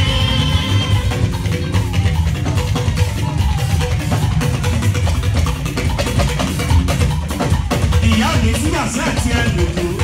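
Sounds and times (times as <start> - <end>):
bass guitar: 0.0 - 10.0
drums: 0.0 - 10.0
live band music: 0.0 - 10.0.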